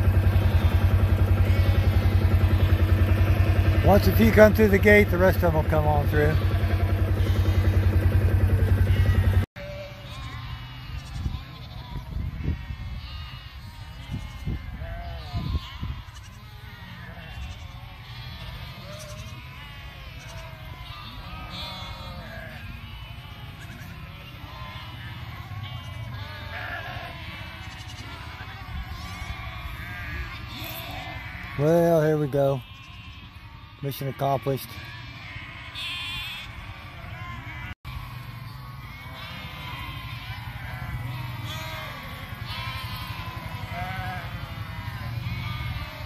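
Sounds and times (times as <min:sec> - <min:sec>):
loud engine running: 0:00.0 - 0:09.5
sheep bleating: 0:00.0 - 0:46.0.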